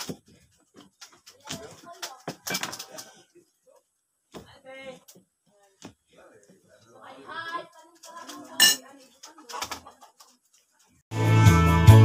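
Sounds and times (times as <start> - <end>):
knife and dishes clinking: 8.2 - 9.0.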